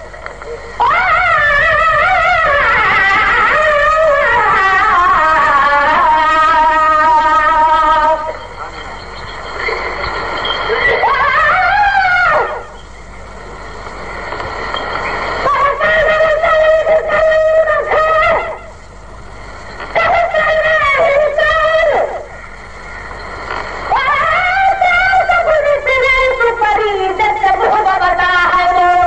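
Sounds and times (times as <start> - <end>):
man singing unaccompanied: 0.8 - 8.5, 24.0 - 29.0.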